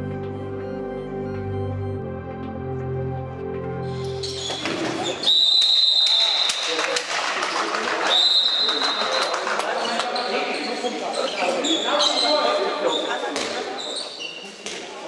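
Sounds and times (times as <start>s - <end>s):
voices in a sports hall: 4.0s - 15.0s
referee's whistle blasts: 5.1s - 6.7s, 8.1s - 9.0s.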